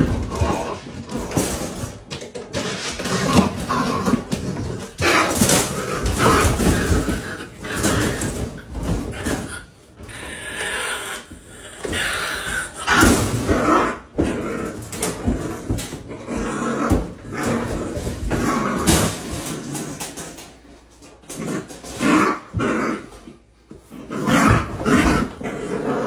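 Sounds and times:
raccoon growling: 0:00.0 - 0:01.9, 0:02.5 - 0:20.3, 0:21.3 - 0:26.0.

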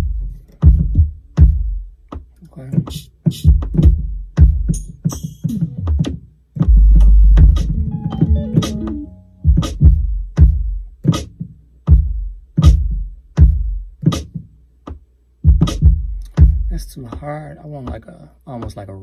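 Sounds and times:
drum machine kick thumps: 0:00.0 - 0:18.8.

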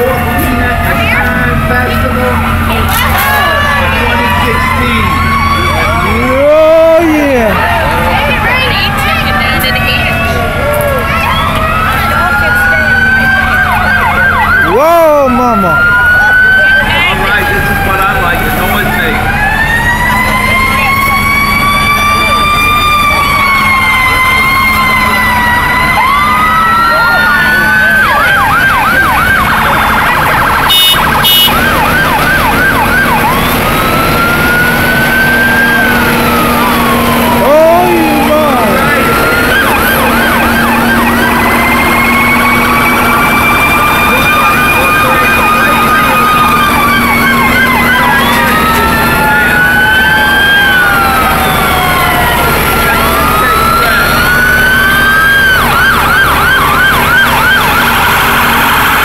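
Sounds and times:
emergency siren wailing and yelping: 0:00.0 - 0:59.0
low engine drone: 0:00.0 - 0:59.0.

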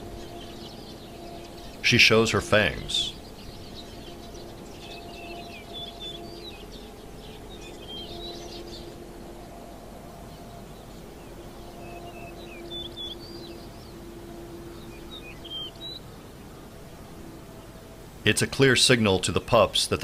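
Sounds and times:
small birds chirping: 0:00.0 - 0:20.0
steady low hum: 0:00.0 - 0:20.0.

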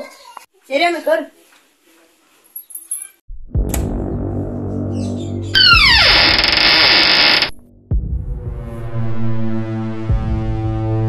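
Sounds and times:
low synthesizer drone: 0:03.6 - 0:11.0.

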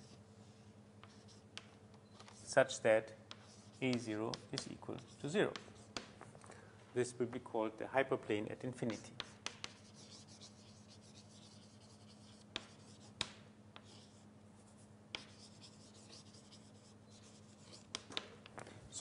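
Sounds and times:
writing on a board: 0:00.0 - 0:02.6, 0:03.3 - 0:06.3, 0:08.8 - 0:18.3
steady low hum: 0:00.0 - 0:19.0.

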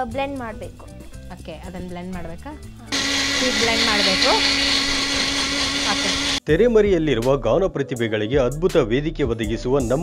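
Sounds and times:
electric blender running: 0:02.9 - 0:06.4.

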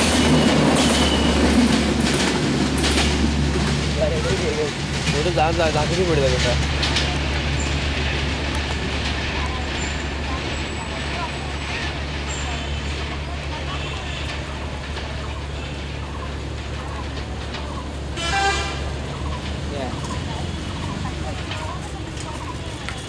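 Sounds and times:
train rumbling on track: 0:00.0 - 0:23.0
train horn toot: 0:18.2 - 0:18.9.

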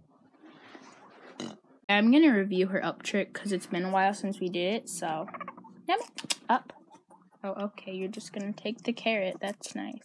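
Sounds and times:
guinea pig sounds: 0:01.4 - 0:10.0.

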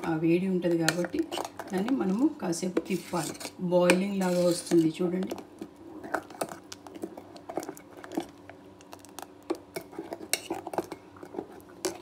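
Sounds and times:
metal spoon scraping steel pot: 0:02.8 - 0:04.9.

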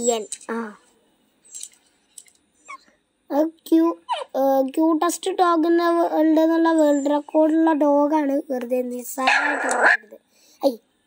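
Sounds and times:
dog barking: 0:04.1 - 0:04.4.

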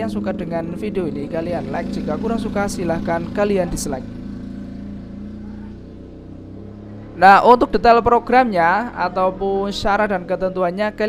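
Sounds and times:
faint drone: 0:00.0 - 0:11.0.

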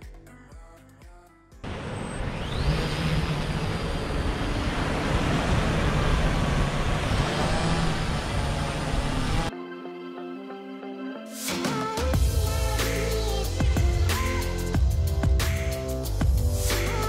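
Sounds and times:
drone propellers buzzing: 0:01.7 - 0:09.5.

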